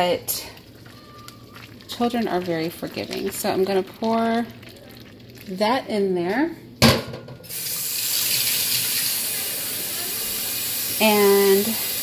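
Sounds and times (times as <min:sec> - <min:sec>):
liquid pouring into pot: 0:00.0 - 0:05.6
pot sizzling: 0:00.0 - 0:05.8, 0:07.4 - 0:12.0.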